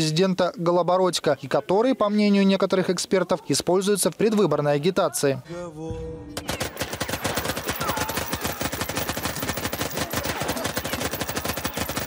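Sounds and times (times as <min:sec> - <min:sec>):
rapid automatic gunfire: 0:06.4 - 0:12.0.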